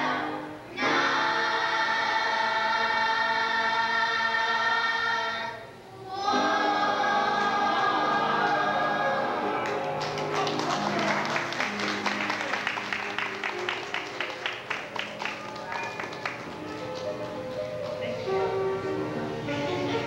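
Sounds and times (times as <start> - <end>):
choir singing gospel: 0.0 - 13.3
rhythmic hand clapping: 9.6 - 18.5.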